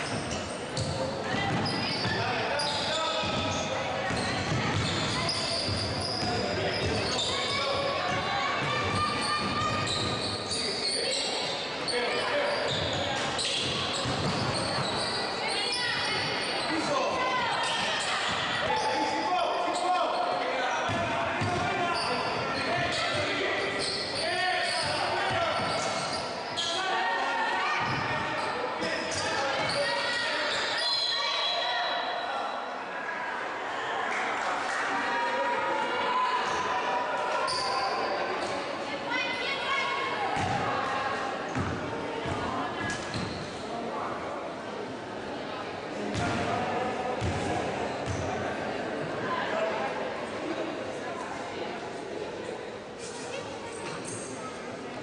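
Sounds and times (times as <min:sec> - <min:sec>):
voices calling out in a gym: 0:00.0 - 0:55.0.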